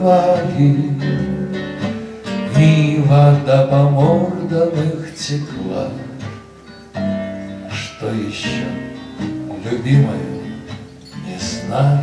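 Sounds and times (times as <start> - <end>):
acoustic guitars: 0.0 - 12.0.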